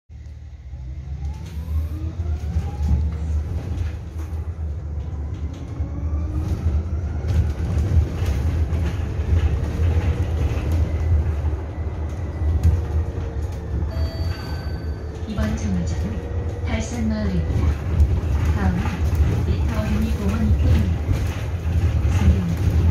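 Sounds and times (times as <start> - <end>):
road rumble: 0.1 - 13.9, 15.0 - 22.9.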